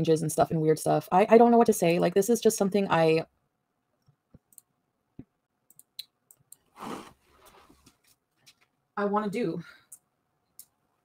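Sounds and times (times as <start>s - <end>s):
faint small clicks: 5.7s - 6.6s.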